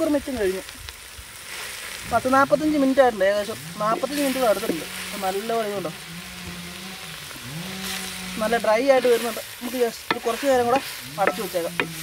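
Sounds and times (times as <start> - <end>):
meat sizzling in a pot: 0.0 - 12.0.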